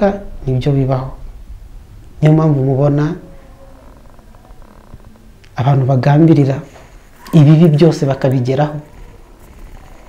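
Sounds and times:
man speaking: 0.0s - 1.2s, 2.2s - 3.3s, 5.6s - 8.9s.

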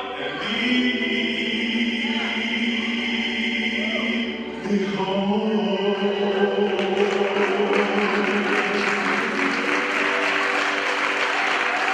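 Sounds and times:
audience applauding: 6.4s - 11.9s.

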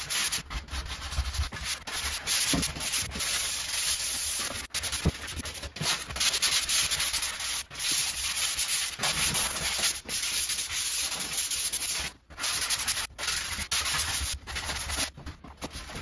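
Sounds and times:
sanding pad rasping on wall: 0.0s - 16.0s.

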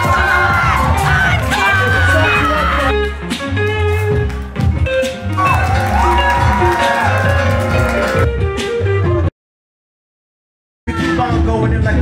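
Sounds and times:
pulsing bass line: 0.0s - 9.0s.

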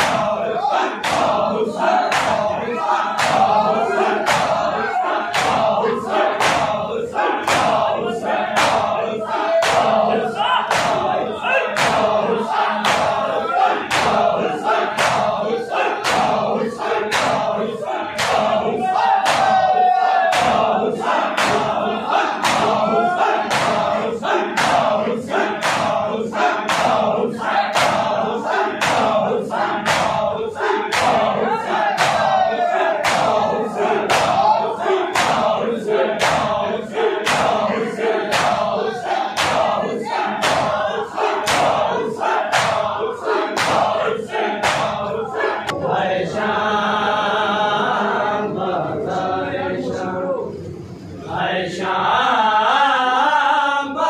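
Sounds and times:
chest beats in unison: 0.0s - 45.8s
men chanting and calling out: 0.0s - 54.0s.

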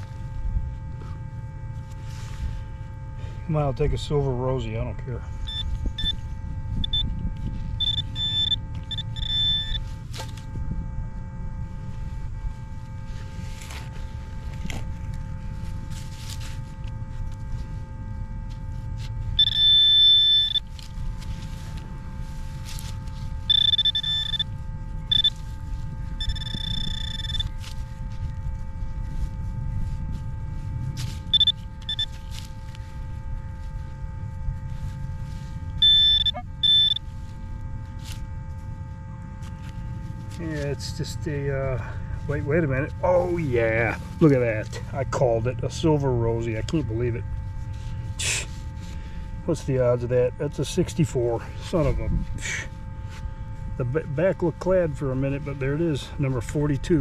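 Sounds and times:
handling and digging rumble: 0.0s - 57.0s
metal detector beeps: 5.3s - 10.4s, 19.0s - 21.6s, 22.4s - 28.4s, 31.1s - 32.8s, 34.8s - 37.3s.

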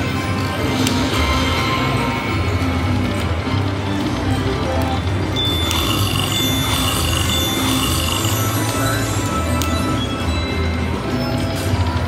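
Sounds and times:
slot machine music with bass beat: 4.5s - 12.0s
high ringing tone with chimes: 5.4s - 11.0s.

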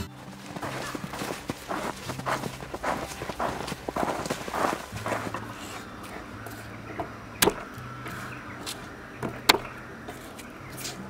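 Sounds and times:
boots crunching through snow: 0.0s - 11.0s.

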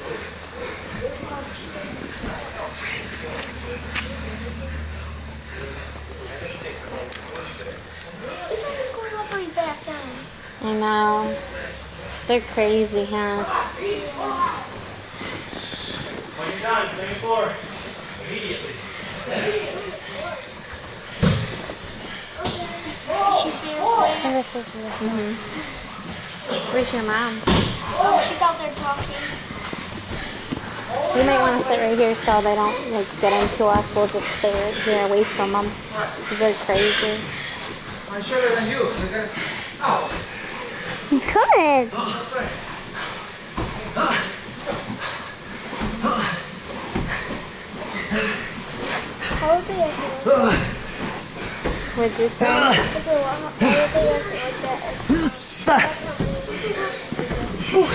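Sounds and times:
people talking and calling out: 0.0s - 57.9s.

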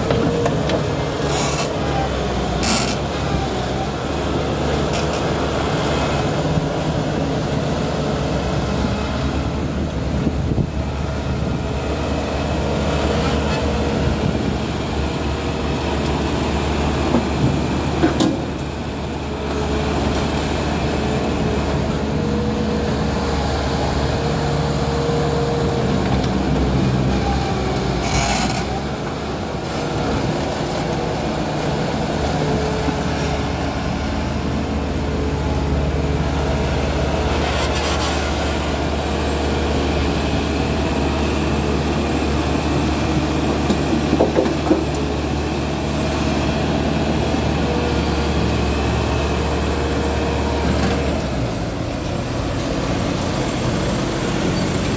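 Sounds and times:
diesel engine running under load: 0.0s - 54.9s.

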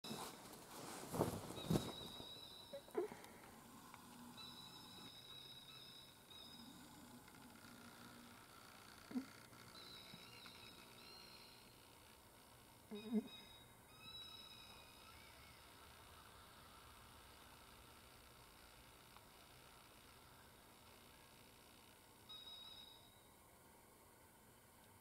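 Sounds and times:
faint high whine: 0.0s - 25.0s.

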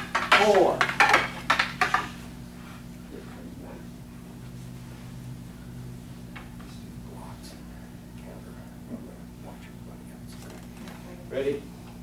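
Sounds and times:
wooden swords clacking: 0.0s - 2.1s
low steady hum: 0.0s - 12.0s.

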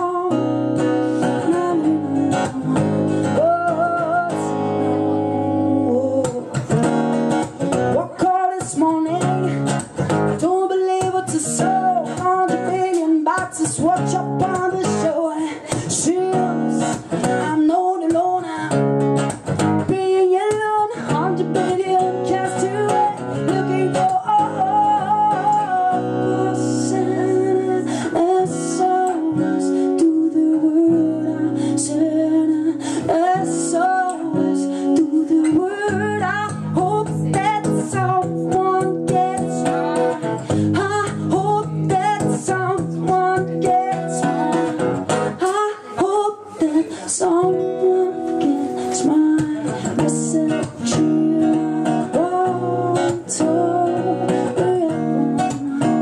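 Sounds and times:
acoustic guitar strumming: 0.0s - 56.0s
woman singing: 0.0s - 56.0s.

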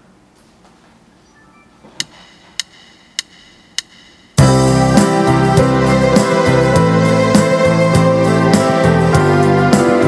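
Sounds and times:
sharp count-in ticks: 2.0s - 4.4s
keyboard music: 4.4s - 10.0s.

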